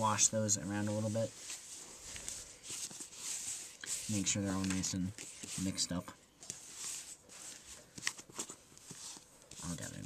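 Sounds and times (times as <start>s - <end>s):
playing cards swishing on a mat: 0.8s - 10.0s.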